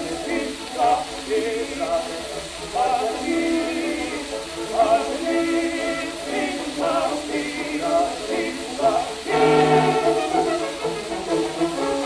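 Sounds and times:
people singing: 0.0 - 12.0
record surface hiss: 0.0 - 12.0
brass band playing: 9.3 - 12.0.

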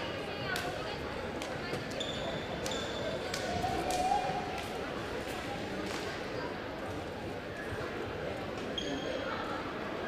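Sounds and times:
crowd chatter echoing: 0.0 - 10.0
brief high squeaks: 8.8 - 9.3.

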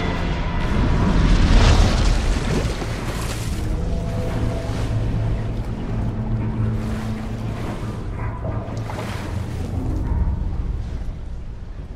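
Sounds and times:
rough sea churning: 0.0 - 11.9
steady deep rumble: 0.0 - 11.9
wind: 0.0 - 11.9.

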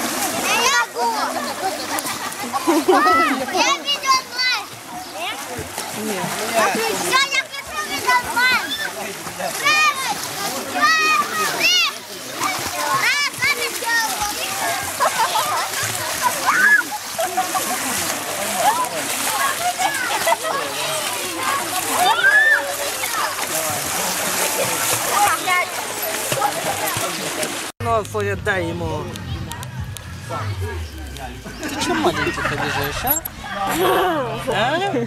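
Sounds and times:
water splashing in a pool: 0.0 - 28.2
children shouting and squealing: 7.1 - 17.2, 18.6 - 23.5.

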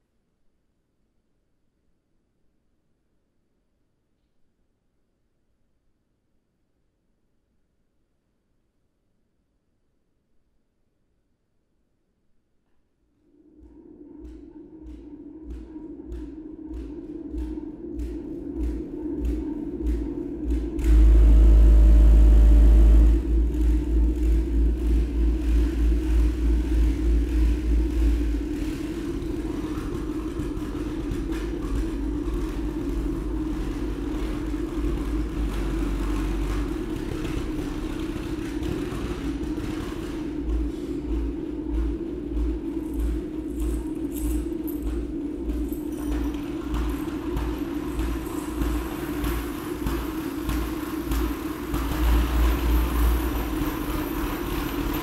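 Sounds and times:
percussion ensemble drone: 15.5 - 55.0.

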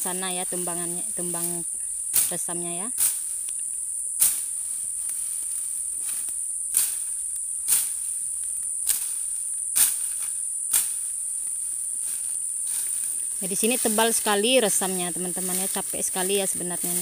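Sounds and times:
fern stems cracking: 0.0 - 17.0
high insect drone: 0.0 - 17.0.

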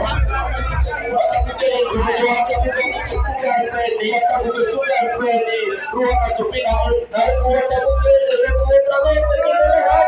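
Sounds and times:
backing track with heavy bass beat: 0.0 - 10.0
man singing a long note: 1.2 - 10.0.

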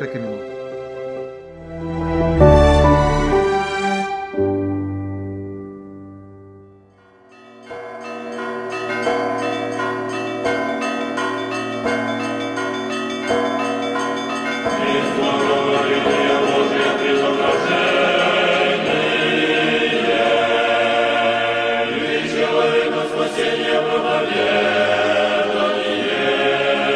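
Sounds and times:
choir singing: 1.5 - 5.6, 14.5 - 26.9
smaller bells ringing: 5.0 - 20.5
heavy church bell striking: 5.6 - 19.1.

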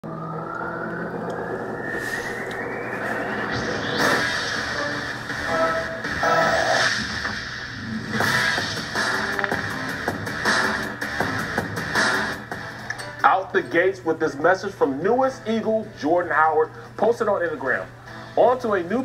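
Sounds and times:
rising sweep: 0.0 - 12.5
electronic theme music on tv: 0.0 - 19.0
heavy whooshing hits: 0.7 - 6.2.

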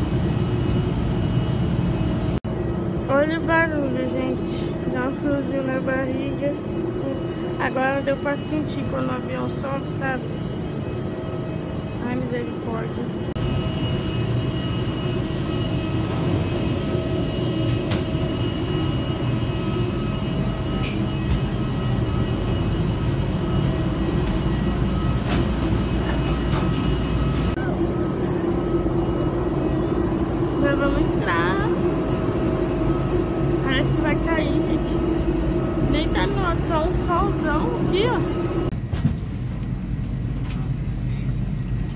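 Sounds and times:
jet engine cabin rumble: 0.0 - 41.9.

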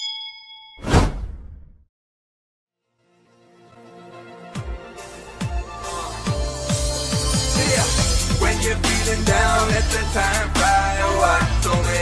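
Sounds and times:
notification bell ding: 0.0 - 0.8.

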